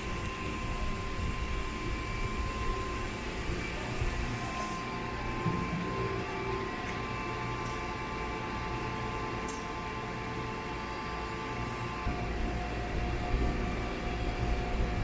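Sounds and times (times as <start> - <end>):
machine hum with whine: 0.0 - 15.0.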